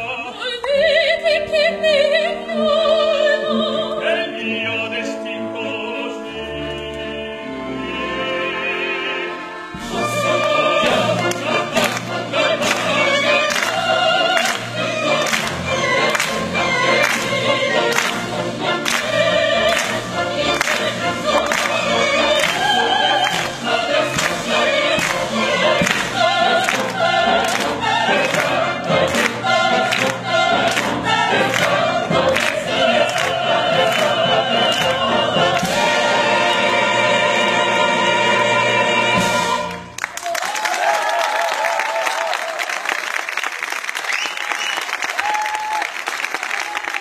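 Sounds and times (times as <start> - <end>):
operatic chorus with orchestra: 0.0 - 40.0.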